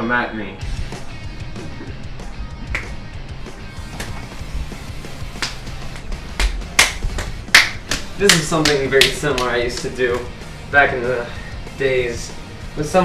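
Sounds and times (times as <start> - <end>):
background music with bass line: 0.0 - 13.0
sharp slaps of hands striking: 2.6 - 3.1, 3.9 - 4.3, 5.2 - 10.3.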